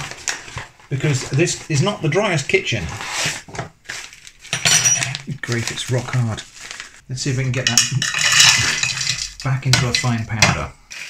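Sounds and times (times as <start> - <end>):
paper bag rustling and crackling: 0.0 - 7.0.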